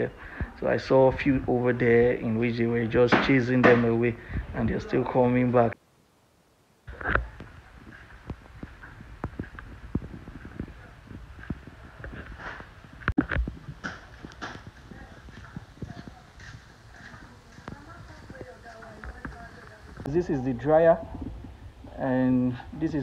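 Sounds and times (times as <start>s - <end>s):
faint voices: 6.9s - 23.0s
footsteps on concrete: 7.2s - 20.1s.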